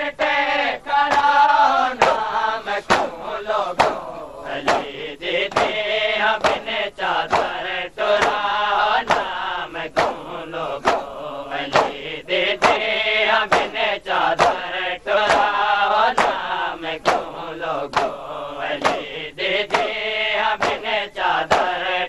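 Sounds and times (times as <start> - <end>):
men chanting together: 0.0 - 22.0
hands slapping bare chests: 1.0 - 21.9.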